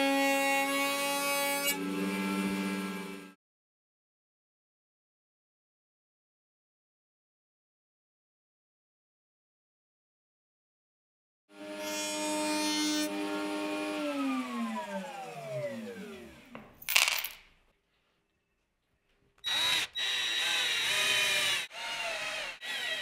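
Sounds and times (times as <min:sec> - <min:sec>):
router motor running and winding down: 0:01.7 - 0:03.4, 0:11.5 - 0:16.5, 0:19.4 - 0:23.0
cordless drill driving screws: 0:19.4 - 0:23.0.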